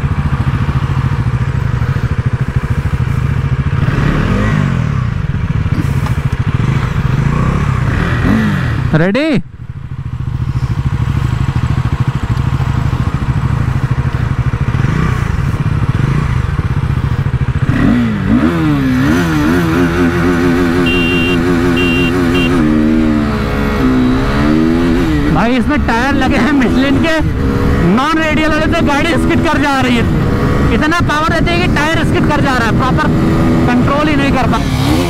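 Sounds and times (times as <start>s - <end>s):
motorcycle engines accelerating: 0.0s - 35.0s.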